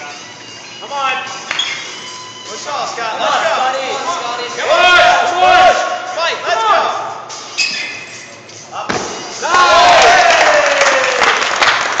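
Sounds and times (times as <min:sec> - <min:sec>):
shouts of encouragement: 0:09.4 - 0:11.4
crowd yelling and clapping: 0:09.4 - 0:12.0.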